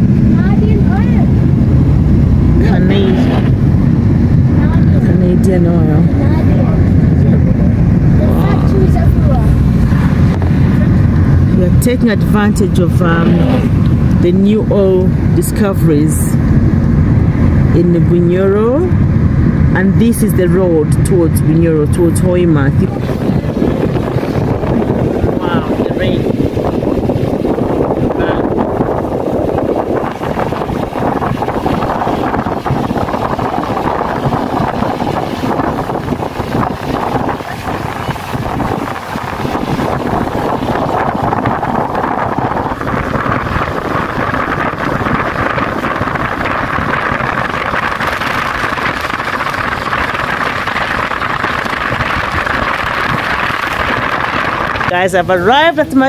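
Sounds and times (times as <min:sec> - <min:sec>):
car road noise on wet road: 0:00.0 - 0:56.0
wind buffeting microphone: 0:00.0 - 0:56.0.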